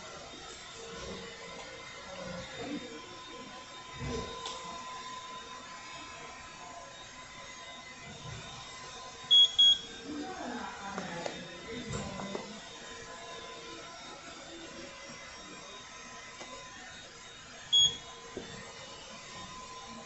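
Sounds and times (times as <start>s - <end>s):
short high beeps: 9.3s - 9.8s, 17.8s - 18.0s.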